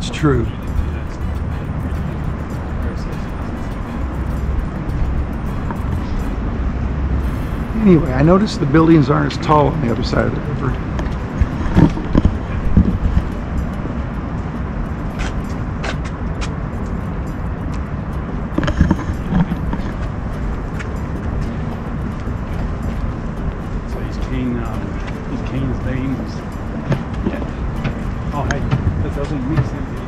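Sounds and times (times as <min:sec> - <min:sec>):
faint voices of passers-by: 0:00.0 - 0:30.0
low rumble of city ambience: 0:00.0 - 0:30.0.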